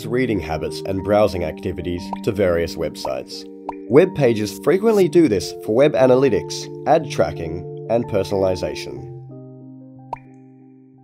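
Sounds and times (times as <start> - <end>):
background music sustained notes: 0.0 - 11.0.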